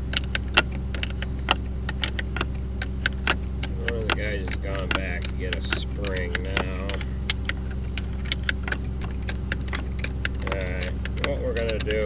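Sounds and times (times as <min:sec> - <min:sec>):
low machine hum: 0:00.0 - 0:12.0
metal tools clinking on a nut: 0:01.9 - 0:12.0.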